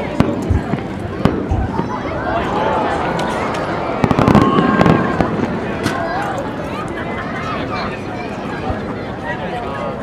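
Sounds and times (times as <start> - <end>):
fireworks bursting: 0.0 - 2.2, 3.1 - 6.2
crowd voices: 0.0 - 10.0.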